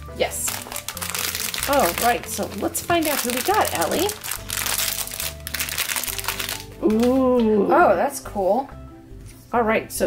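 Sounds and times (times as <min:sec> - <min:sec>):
foil bag crinkling: 0:00.4 - 0:07.2.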